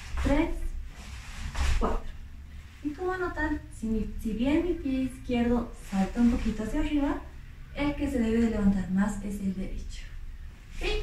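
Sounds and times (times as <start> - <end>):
woman speaking: 0.0 - 0.8, 1.6 - 2.2, 2.8 - 11.0.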